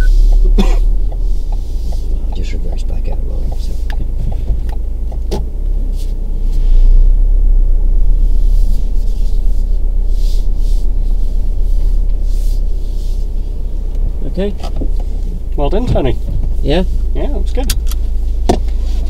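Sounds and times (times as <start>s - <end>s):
car engine running: 0.0s - 19.0s
low rumble inside car: 0.0s - 19.0s.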